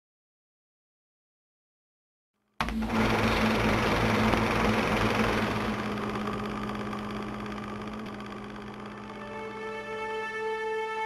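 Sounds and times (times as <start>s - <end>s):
sustained musical tones: 2.6s - 11.0s.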